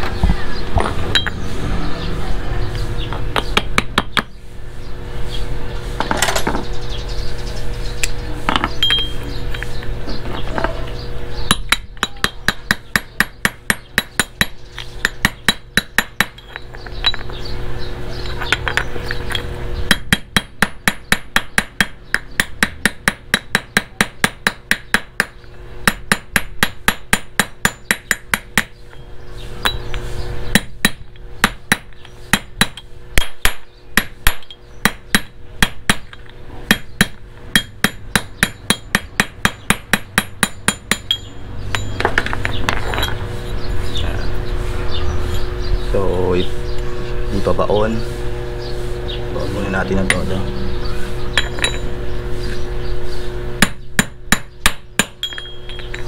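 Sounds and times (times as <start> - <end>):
hammer tapping metal: 11.5 - 17.2, 30.6 - 43.1, 50.0 - 50.4.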